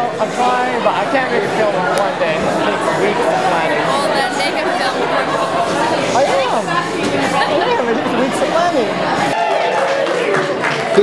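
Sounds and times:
several voices chattering: 0.0s - 9.4s.

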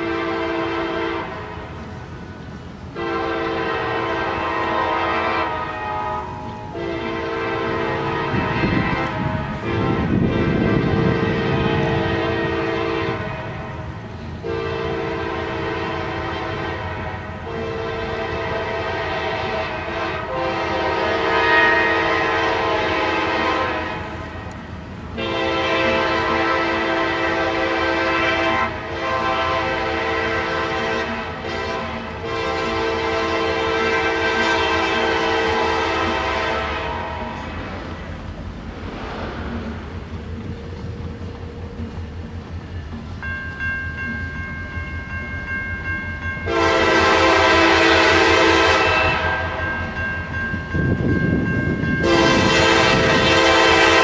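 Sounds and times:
locomotive air horn blasts: 0.0s - 1.9s, 2.9s - 37.7s, 46.4s - 49.8s, 51.9s - 54.0s.

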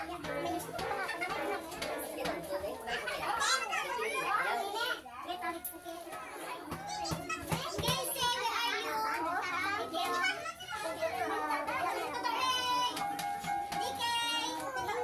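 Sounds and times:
children and adults talking: 0.0s - 15.0s.

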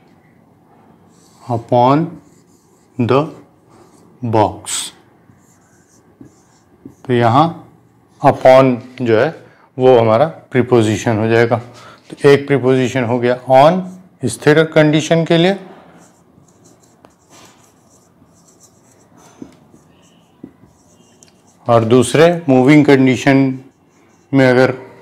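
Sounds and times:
marker pen writing on whiteboard: 1.1s - 9.0s, 13.6s - 25.0s.

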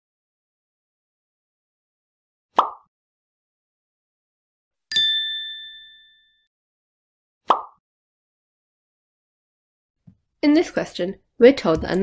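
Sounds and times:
bright bell-like ding: 4.9s - 6.5s.

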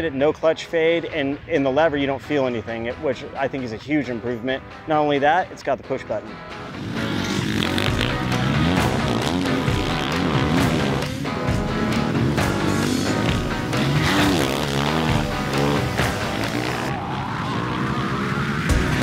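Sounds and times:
background music: 0.0s - 19.0s
motorcycle engine revving: 6.5s - 19.0s.

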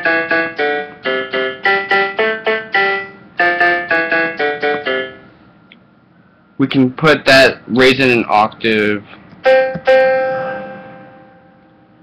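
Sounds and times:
ringing instrument note: 9.5s - 12.0s.

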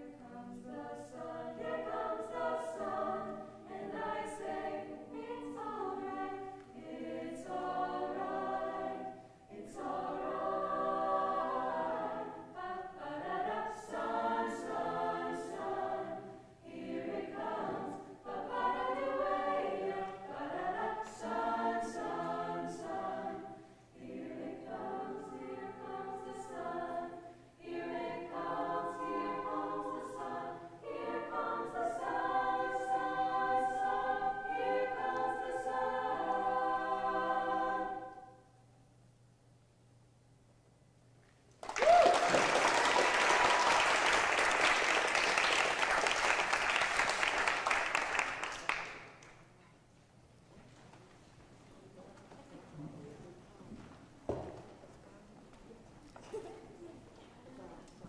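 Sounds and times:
children's choir singing in harmony: 0.0s - 38.6s, 42.4s - 49.2s.

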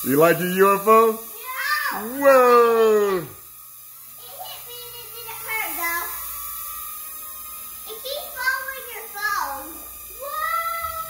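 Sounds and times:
toy drone propellers whining: 0.0s - 11.0s.

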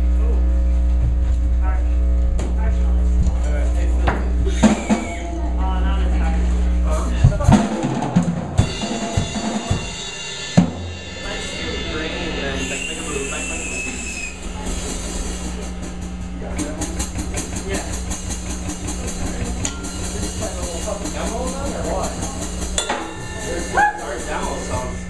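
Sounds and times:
amplifier hum: 0.0s - 7.4s, 8.3s - 25.0s
drum kit hits: 3.8s - 5.3s, 6.8s - 25.0s.

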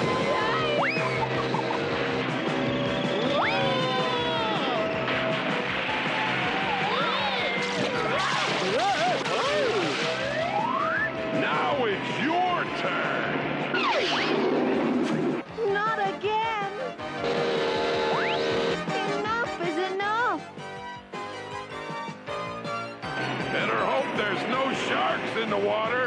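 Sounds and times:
cartoon background music: 0.0s - 14.6s, 15.5s - 26.0s
cartoon characters yelling and screaming: 3.3s - 4.9s.

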